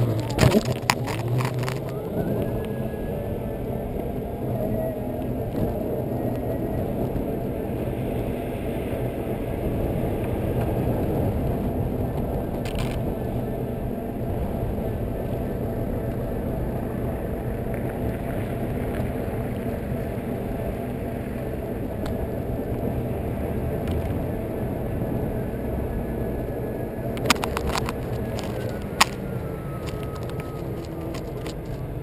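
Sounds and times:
electric unicycle rumble: 0:00.0 - 0:32.0.

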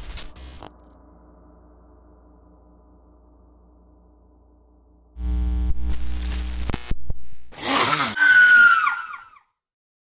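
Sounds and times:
low electronic drone: 0:00.0 - 0:07.5.

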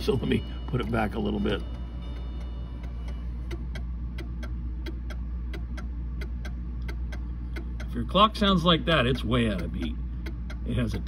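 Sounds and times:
clock ticking unevenly: 0:00.0 - 0:11.0.

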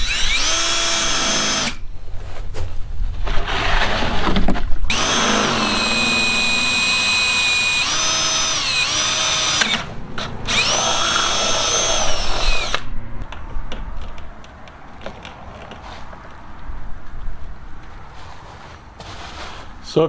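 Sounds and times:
drill motor whine: 0:00.0 - 0:01.8, 0:04.9 - 0:12.9.

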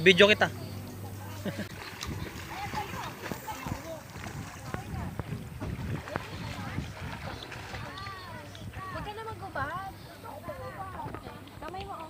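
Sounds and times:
faint voices talking: 0:00.0 - 0:12.0
wind buffeting microphone: 0:00.8 - 0:12.0.

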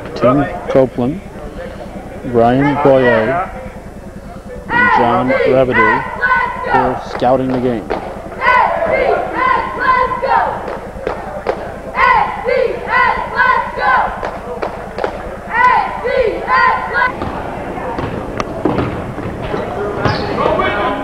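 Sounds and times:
gym noise: 0:00.0 - 0:21.0
cheerleaders chanting in unison: 0:04.7 - 0:07.0, 0:08.0 - 0:11.2, 0:11.8 - 0:14.4, 0:15.4 - 0:18.2
sharp claps: 0:07.1 - 0:08.2, 0:10.6 - 0:11.7, 0:14.2 - 0:15.3.

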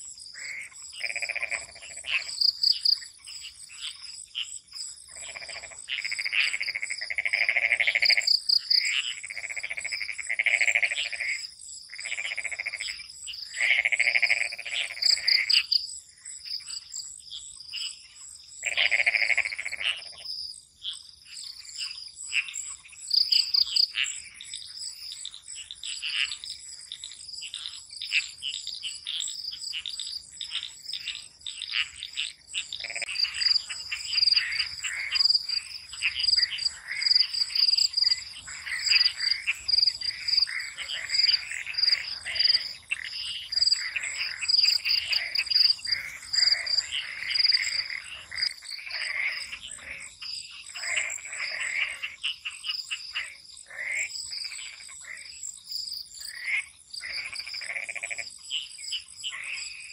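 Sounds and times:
crickets trilling: 0:00.0 - 0:59.9
frogs calling: 0:00.0 - 0:59.9.

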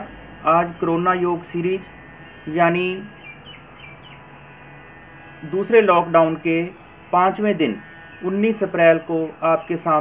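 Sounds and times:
faint bird chirps: 0:03.1 - 0:04.3.

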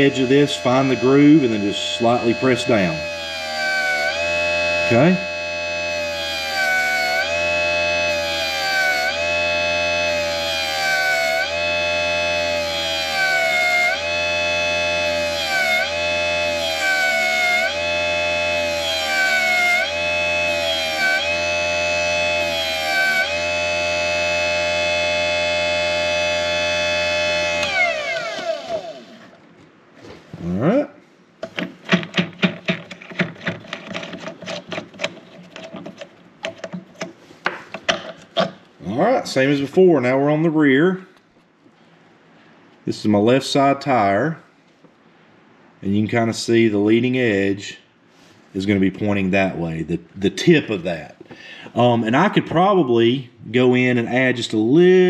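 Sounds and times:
electric motor whining: 0:00.0 - 0:29.4
clicks and rattles: 0:31.4 - 0:37.2.

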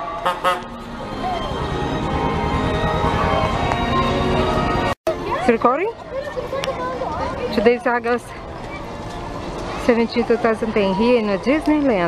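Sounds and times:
crowd and street noise: 0:00.0 - 0:12.0
horn tooting in short blasts: 0:00.2 - 0:00.7.

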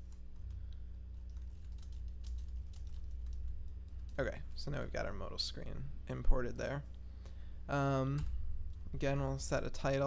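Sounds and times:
low electrical hum: 0:00.0 - 0:10.0
typing on computer keyboard: 0:01.2 - 0:04.2.

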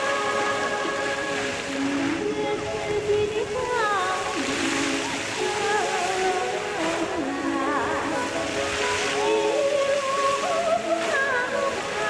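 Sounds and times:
fountain water jets spraying: 0:00.0 - 0:12.0.

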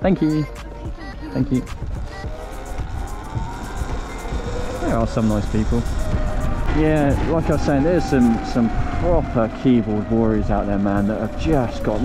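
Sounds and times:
wind rumble: 0:00.9 - 0:12.0
electric motor whine: 0:01.9 - 0:12.0.

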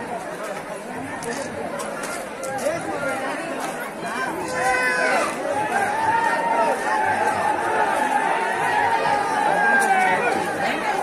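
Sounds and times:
crowd babble of overlapping voices: 0:00.0 - 0:11.0.

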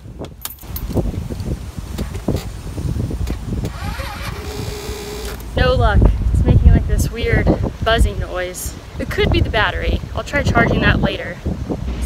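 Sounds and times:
handling rattles and rumbles: 0:00.2 - 0:05.6
keys jangling in ignition: 0:00.4 - 0:01.0.

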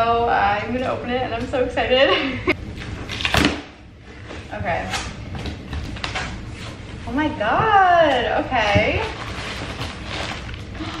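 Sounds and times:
plastic packaging crinkling: 0:09.0 - 0:11.0.

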